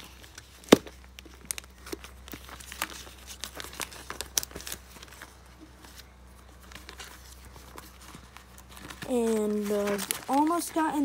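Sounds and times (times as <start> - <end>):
plastic page crinkling: 0.0 - 11.0.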